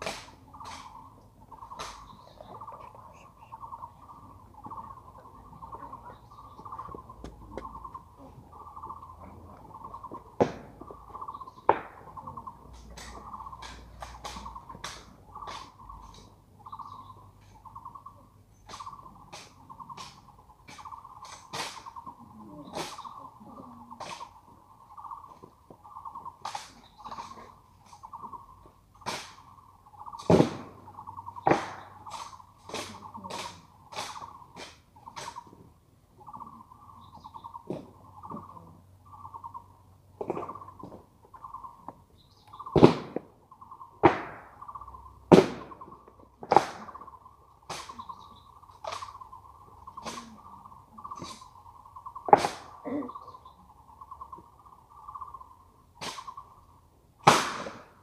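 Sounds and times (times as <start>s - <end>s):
bird calling: 0.0s - 57.0s.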